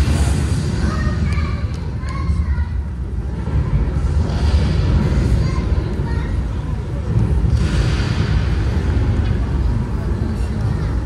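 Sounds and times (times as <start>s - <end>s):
deep rumbling soundtrack music: 2.4s - 11.0s
thunder-like booms: 7.1s - 10.0s.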